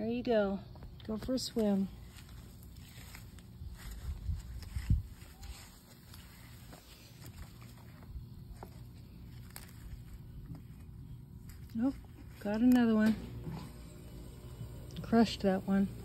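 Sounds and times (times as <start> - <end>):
leaves rustling: 1.3 - 14.8.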